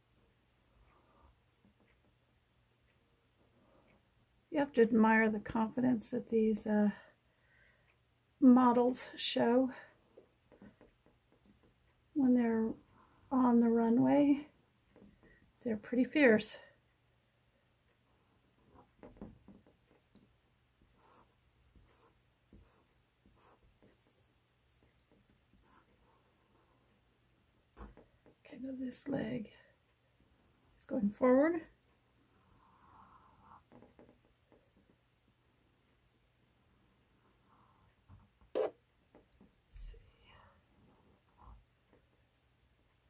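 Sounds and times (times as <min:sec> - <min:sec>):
marker scratching on paper: 0:20.8 - 0:26.8.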